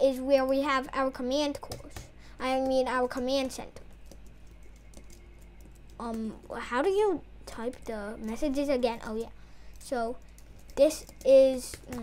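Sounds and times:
low steady hum: 0.0 - 12.0
typing on keyboard: 1.6 - 6.6, 9.1 - 12.0.

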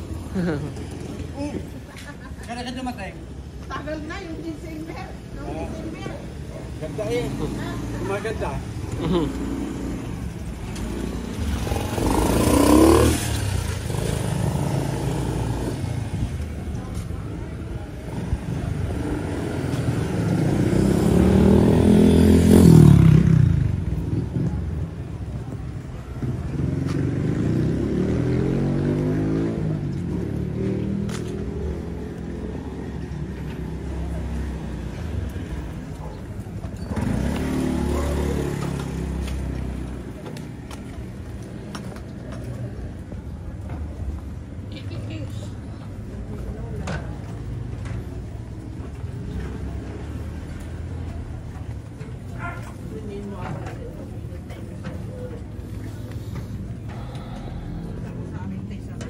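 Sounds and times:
motorcycle engines passing: 0.0 - 59.0
street background noise: 0.0 - 59.0.

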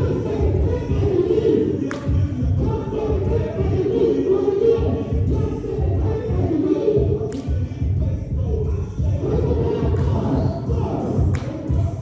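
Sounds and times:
pulsing bass beat: 0.0 - 1.4, 2.1 - 3.9, 4.8 - 12.0
workout music with vocals: 0.0 - 12.0.

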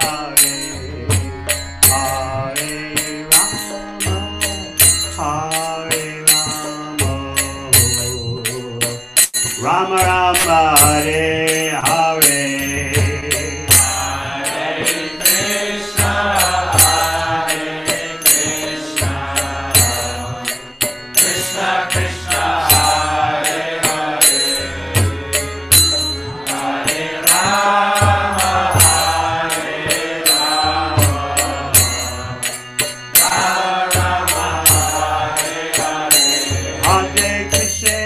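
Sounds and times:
man chanting into a microphone: 9.6 - 13.7.

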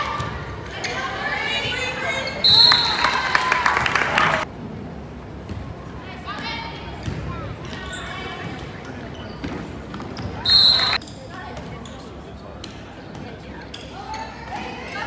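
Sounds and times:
voices of players and spectators: 0.0 - 15.0.

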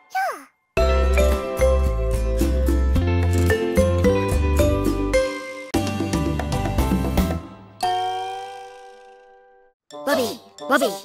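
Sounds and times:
music with bass and chimes: 0.8 - 9.0.

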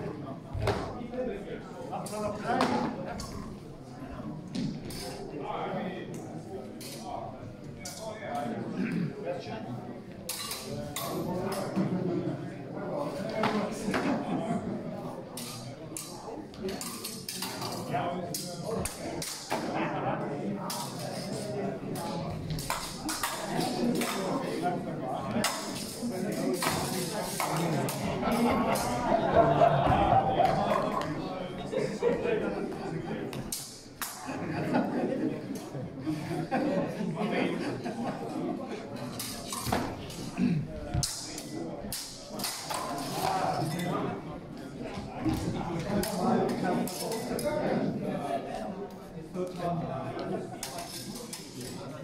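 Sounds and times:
background chatter: 0.0 - 52.0
murmur of voices: 0.0 - 52.0.

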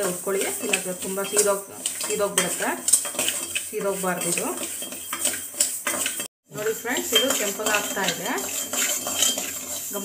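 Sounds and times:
metal spoon scraping steel pot: 0.0 - 10.0.

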